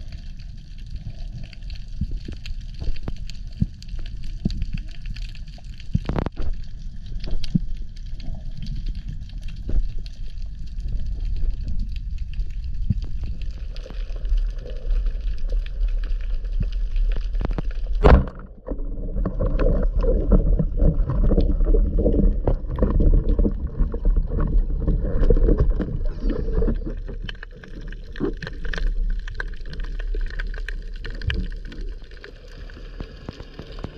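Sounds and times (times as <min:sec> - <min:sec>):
muffled underwater water noise: 0:00.0 - 0:33.9
underwater clicks and knocks: 0:02.0 - 0:07.8, 0:16.5 - 0:32.2.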